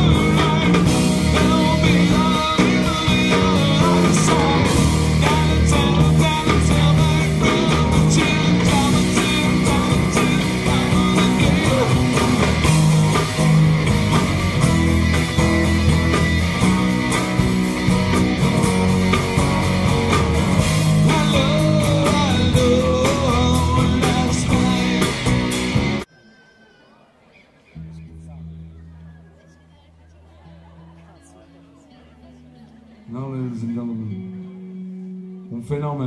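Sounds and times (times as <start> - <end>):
bass: 0.0 - 26.1, 27.8 - 36.0
guitar melody: 0.0 - 26.1, 27.8 - 36.0
drums: 0.0 - 26.3.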